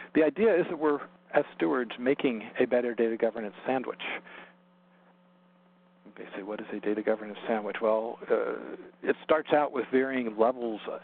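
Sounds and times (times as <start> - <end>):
low electrical hum: 0.0 - 11.0
person speaking: 6.0 - 11.0.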